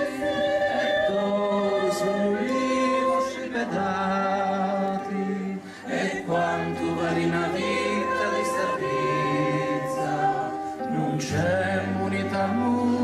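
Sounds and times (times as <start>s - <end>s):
mixed choir singing held chords: 0.0s - 13.0s.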